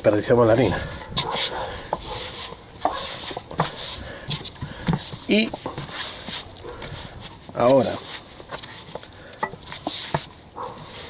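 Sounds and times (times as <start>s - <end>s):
hands kneading dough in metal bowl: 0.0s - 11.0s.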